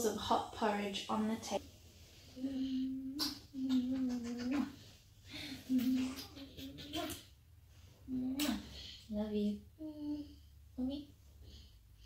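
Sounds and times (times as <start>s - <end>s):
person humming low notes: 2.4s - 4.6s.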